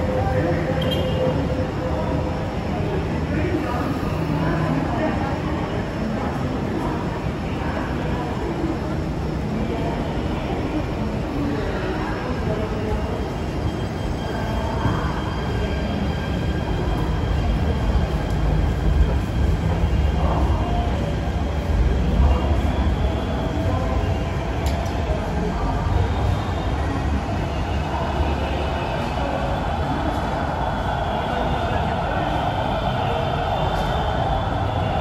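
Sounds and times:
indistinct chatter of passengers: 0.0 - 35.0.

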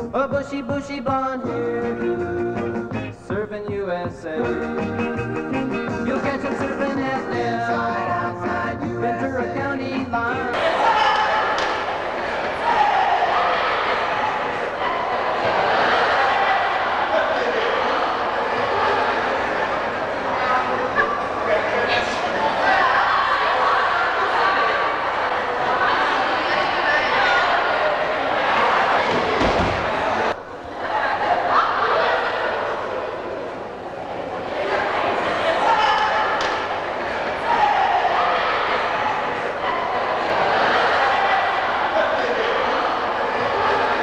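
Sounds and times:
crowd talking and shouting: 0.0 - 44.0
children cheering and chattering: 4.4 - 44.0.

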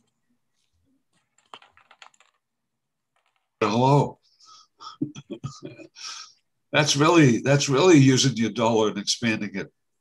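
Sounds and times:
faint keyboard clicks: 0.0 - 2.5, 3.1 - 3.6.

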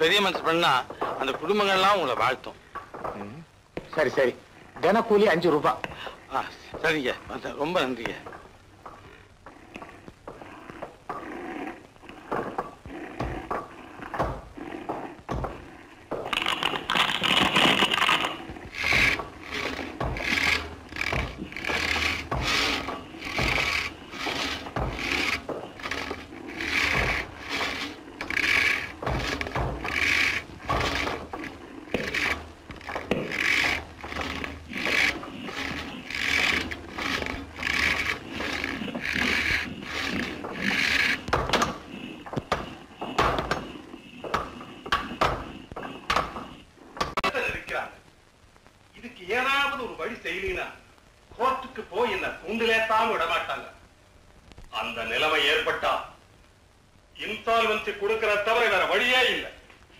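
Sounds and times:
scraping wood: 0.0 - 47.2
knocks on wood: 12.3 - 17.0, 18.7 - 47.2
rasping saw strokes: 18.2 - 46.4.

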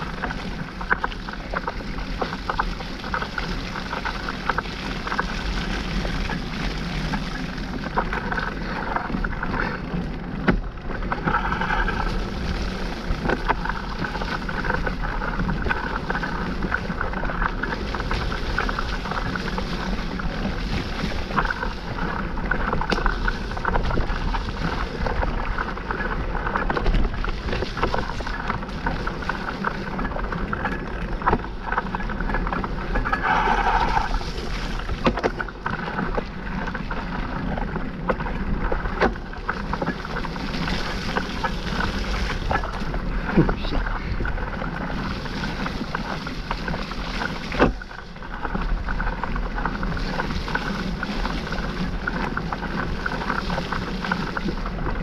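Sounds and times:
bike clicks and rattles: 0.0 - 55.0
tyres rushing over dirt: 0.0 - 55.0
wind on microphone: 0.0 - 55.0.

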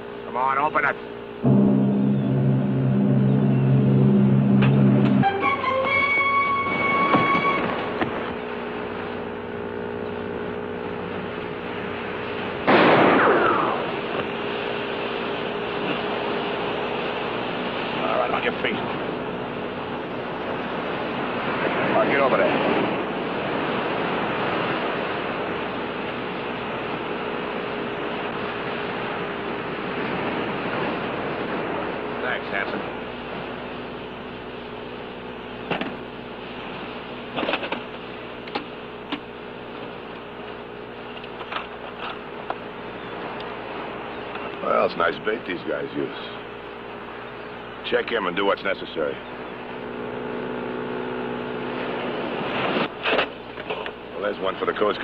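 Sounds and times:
steady engine drone: 0.0 - 55.0
rushing noise: 1.3 - 8.8
loud sudden burst: 1.4 - 7.9, 12.7 - 14.0.

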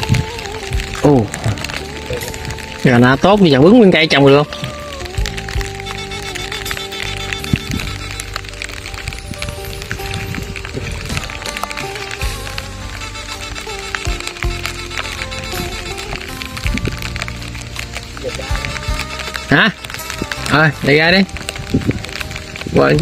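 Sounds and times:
instrumental background music: 0.0 - 23.0.

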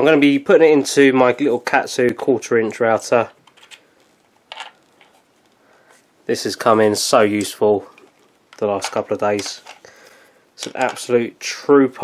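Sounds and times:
small handling sounds: 2.0 - 6.4, 7.2 - 11.2.

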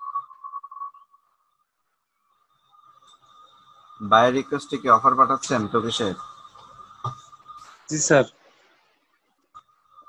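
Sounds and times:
high-pitched wavering tone: 0.0 - 1.6, 2.3 - 8.3.

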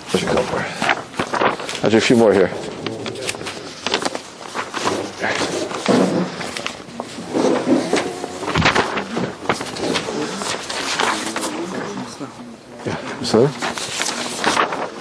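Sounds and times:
indistinct talk: 0.0 - 15.0
paper sheets rustling and clicking: 0.0 - 15.0.

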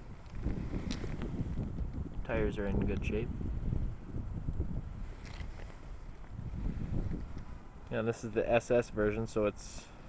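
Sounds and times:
wind buffeting microphone: 0.0 - 9.5.

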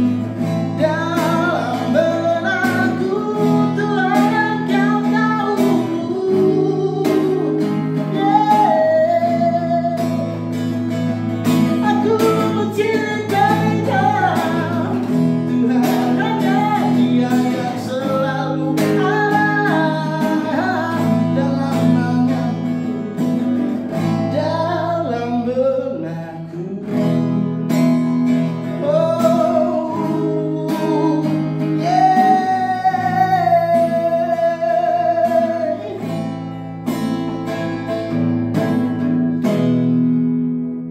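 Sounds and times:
man singing: 0.0 - 39.7
acoustic guitar strumming: 0.0 - 40.9.

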